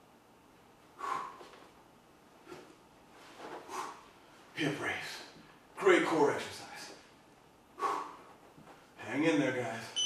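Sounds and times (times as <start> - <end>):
man exhaling forcefully: 1.0 - 1.5, 7.8 - 8.3.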